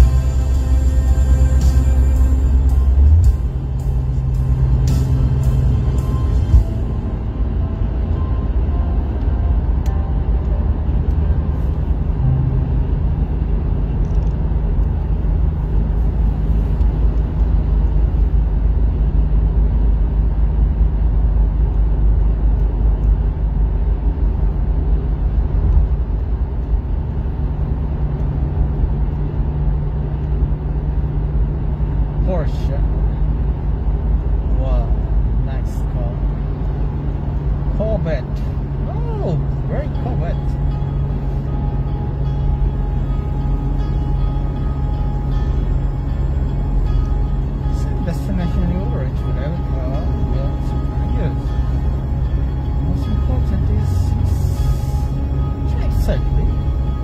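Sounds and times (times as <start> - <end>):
car cabin road and engine rumble: 0.0 - 57.0
constant low hum: 0.0 - 57.0.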